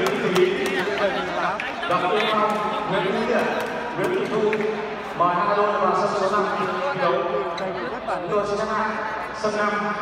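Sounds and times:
men talking: 0:00.0 - 0:10.0.

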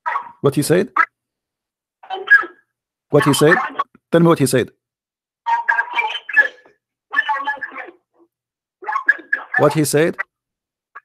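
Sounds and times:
man's voice through phone line: 0:02.1 - 0:04.5, 0:05.5 - 0:08.0, 0:08.8 - 0:10.3.

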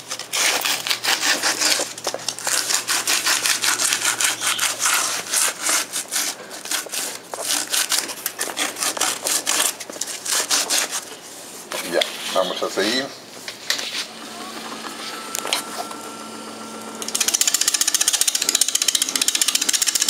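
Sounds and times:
abrasive rubbing on wooden bowl: 0:02.5 - 0:13.0.

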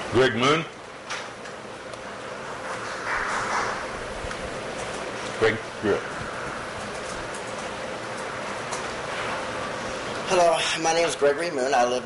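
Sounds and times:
faint steady hum: 0:00.0 - 0:12.0
room noise hiss: 0:00.0 - 0:12.0.

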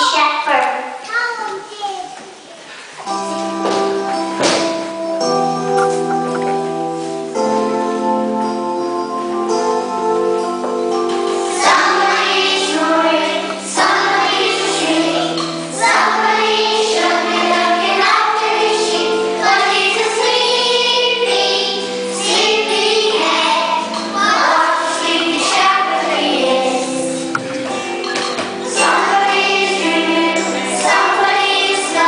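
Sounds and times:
keyboard accompaniment: 0:03.0 - 0:32.0
young children singing: 0:10.4 - 0:32.0.

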